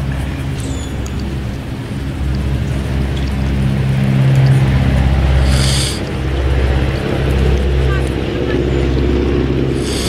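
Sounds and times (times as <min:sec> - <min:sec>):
engine idling low hum: 0:00.0 - 0:10.0.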